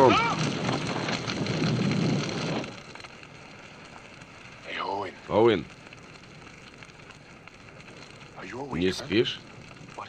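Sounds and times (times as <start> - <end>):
fire crackling and rumbling: 0.0 - 10.0.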